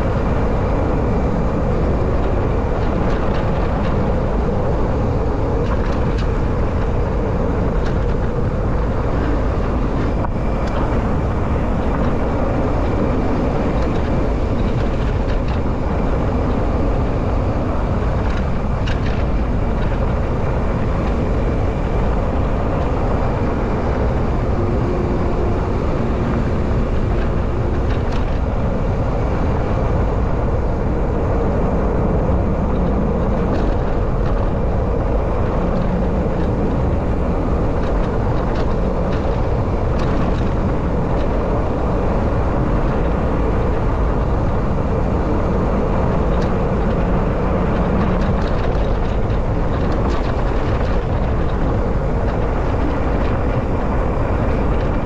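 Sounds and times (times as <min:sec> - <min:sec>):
bike tyres rolling on dirt: 0:00.0 - 0:55.0
faint clicks from bike and gravel: 0:00.0 - 0:55.0
wind on the microphone: 0:00.0 - 0:55.0.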